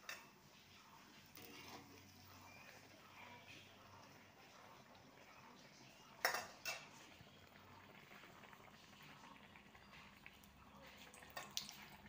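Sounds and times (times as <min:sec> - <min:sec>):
oil sizzling: 0:01.1 - 0:12.0.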